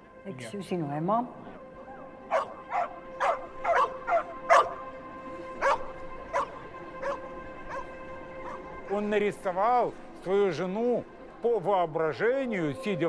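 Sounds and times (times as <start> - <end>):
held musical drone: 1.2 - 13.0
dog barking: 2.3 - 4.8, 5.6 - 8.6.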